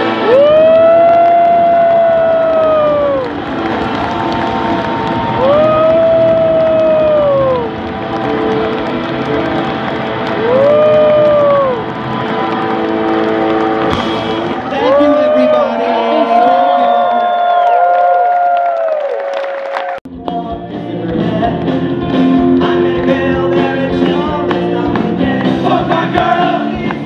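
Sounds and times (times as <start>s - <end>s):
singer holding long high notes: 0.0s - 19.2s
crowd cheering: 0.0s - 20.1s
live rock band playing: 5.6s - 14.7s, 20.1s - 27.0s.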